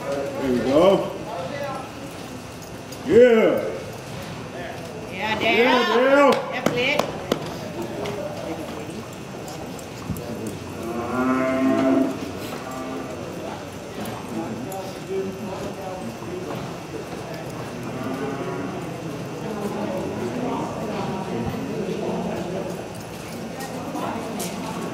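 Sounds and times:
cattle mooing: 0:10.7 - 0:13.4, 0:17.7 - 0:19.0.

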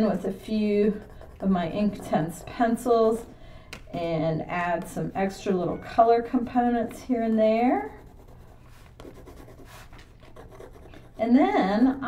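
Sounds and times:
pencil scratching on paper: 0:00.0 - 0:02.9, 0:07.2 - 0:12.0.

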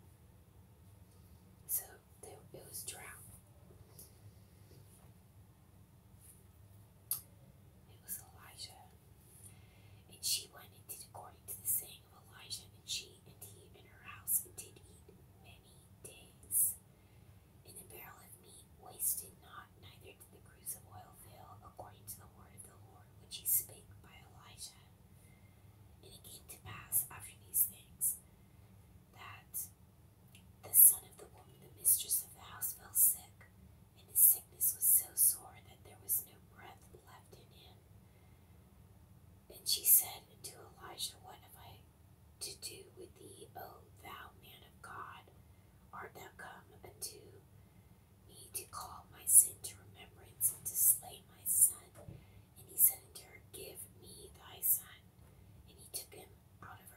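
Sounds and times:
person whispering: 0:01.7 - 0:03.4, 0:07.9 - 0:08.9, 0:10.0 - 0:16.8, 0:17.7 - 0:24.9, 0:26.0 - 0:28.2, 0:29.1 - 0:29.7, 0:30.6 - 0:33.4, 0:34.0 - 0:37.8, 0:39.5 - 0:41.8, 0:42.4 - 0:45.3, 0:46.0 - 0:47.4, 0:48.3 - 0:55.0, 0:55.7 - 0:56.9.

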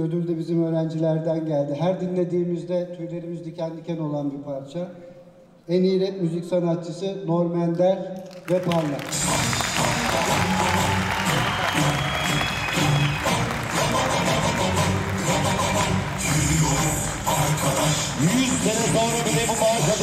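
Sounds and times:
audience applauding: 0:08.2 - 0:20.0
loud music with heavy bass: 0:09.1 - 0:20.0.

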